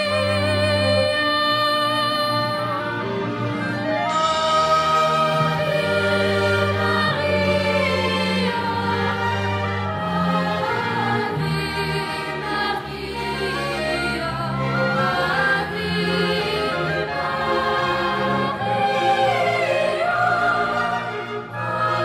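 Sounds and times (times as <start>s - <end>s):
low instrumental accompaniment: 0.0s - 22.0s
children's choir singing: 4.1s - 22.0s.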